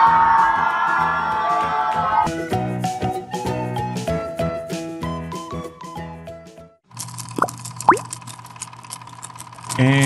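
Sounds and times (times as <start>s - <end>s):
upward-gliding plops: 7.4s - 8.0s.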